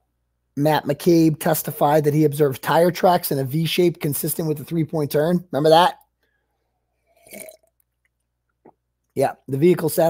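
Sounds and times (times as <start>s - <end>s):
man gulping: 7.0s - 8.9s.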